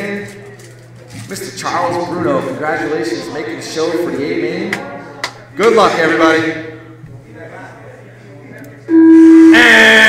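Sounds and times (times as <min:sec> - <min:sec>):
loud electronic beep: 0:08.9 - 0:10.0.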